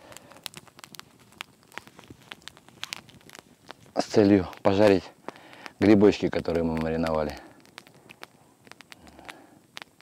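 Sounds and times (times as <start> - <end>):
campfire crackling and popping: 0.0 - 10.0.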